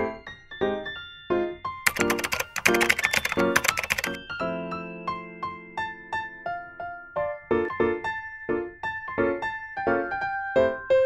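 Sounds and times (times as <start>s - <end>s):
piano music: 1.9s - 4.2s.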